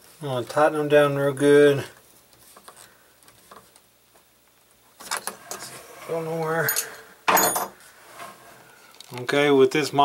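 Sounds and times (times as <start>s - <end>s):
metal clinking and rattling: 6.6s - 7.8s.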